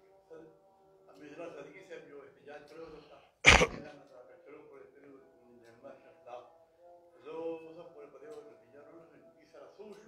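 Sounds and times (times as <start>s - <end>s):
man clearing his throat: 3.5s - 3.8s.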